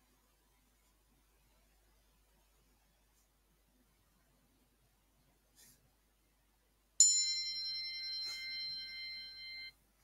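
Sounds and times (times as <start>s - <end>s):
timer bell chime: 7.0s - 9.8s.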